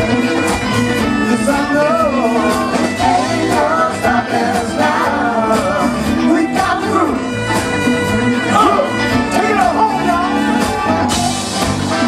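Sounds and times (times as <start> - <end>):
electric bass: 0.0 - 12.0
electric guitar: 0.0 - 12.0
keyboard: 0.0 - 12.0.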